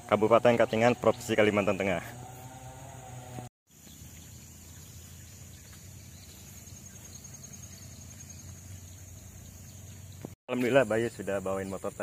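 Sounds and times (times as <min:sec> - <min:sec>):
high-pitched insect trill: 0:03.7 - 0:10.1.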